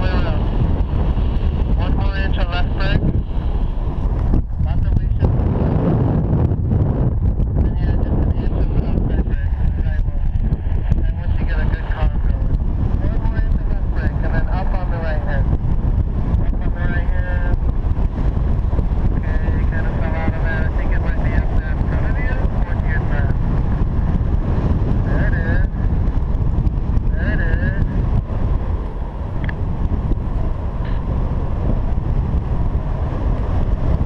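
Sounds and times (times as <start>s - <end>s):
airflow buffeting microphone: 0.0s - 34.0s.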